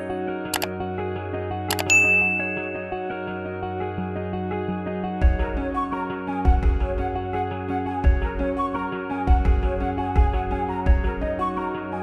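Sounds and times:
soft background music: 0:00.0 - 0:12.0
mouse click sound: 0:01.7 - 0:02.2
bell-like ding: 0:01.7 - 0:03.1.

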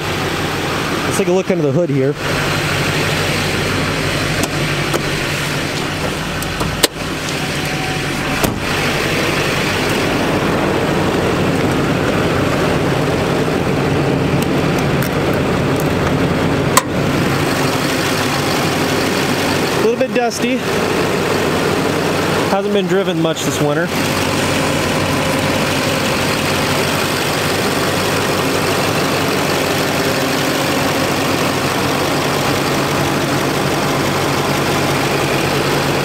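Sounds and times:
diesel engine idling: 0:00.0 - 0:36.0.

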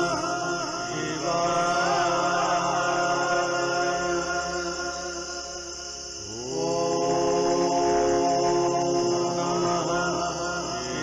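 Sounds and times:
steady drone: 0:00.0 - 0:05.8
person chanting: 0:00.0 - 0:11.0.

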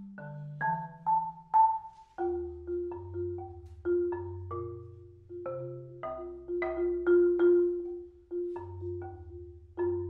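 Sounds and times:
marimba played with mallets: 0:00.0 - 0:10.0.

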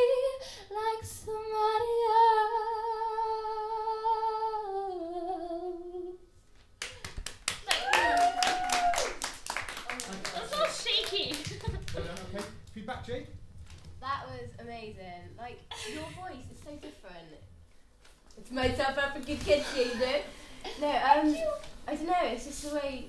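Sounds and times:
audience applauding: 0:06.8 - 0:12.6.

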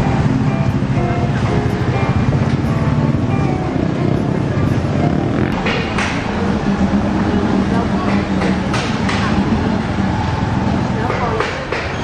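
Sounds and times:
music playing: 0:00.0 - 0:10.5
vehicle engine rumbling: 0:00.0 - 0:12.0.

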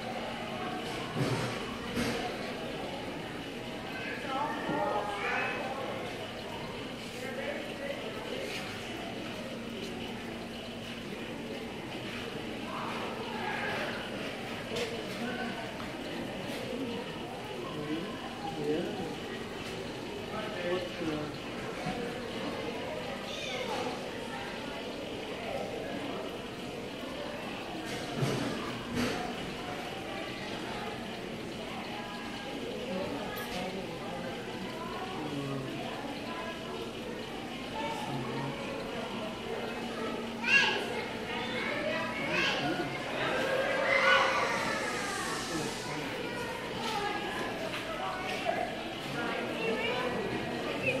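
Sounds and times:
people chattering: 0:00.0 - 0:51.0.

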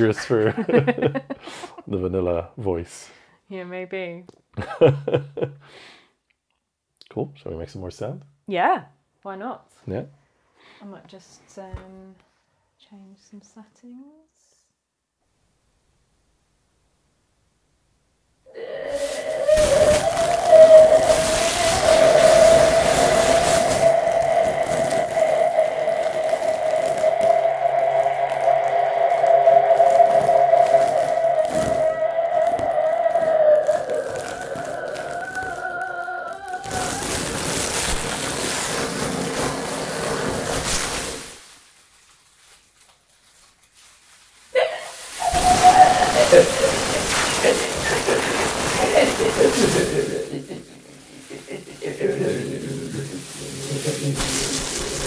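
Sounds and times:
wavering vocal sounds: 0:18.5 - 0:37.5, 0:44.6 - 0:55.0
long held tone: 0:18.6 - 0:37.0, 0:45.2 - 0:47.6
noisy textured electronics: 0:19.0 - 0:41.5, 0:45.0 - 0:55.0.

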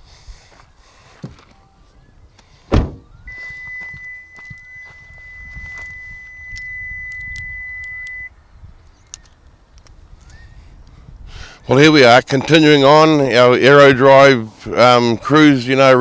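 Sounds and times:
steady high electronic tone: 0:03.3 - 0:08.3.

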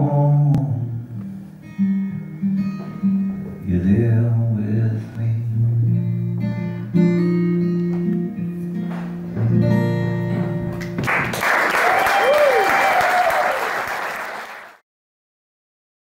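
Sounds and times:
acoustic guitar chords: 0:00.0 - 0:11.4
audience applause: 0:10.8 - 0:14.8
person cheering: 0:11.6 - 0:13.9.

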